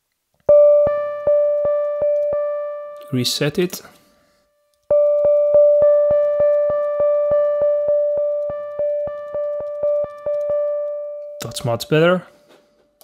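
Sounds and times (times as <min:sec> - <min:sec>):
synthesizer repeating one note: 0:04.9 - 0:11.6.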